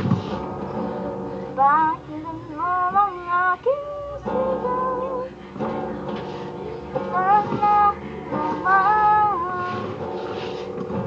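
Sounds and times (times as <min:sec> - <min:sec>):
strummed acoustic guitar: 0:00.0 - 0:11.0
boy singing: 0:01.6 - 0:05.4, 0:06.6 - 0:10.0.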